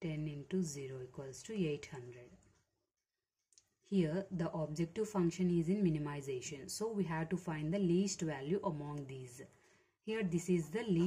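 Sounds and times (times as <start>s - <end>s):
woman speaking: 0.0s - 2.4s, 3.9s - 9.5s, 10.1s - 11.0s.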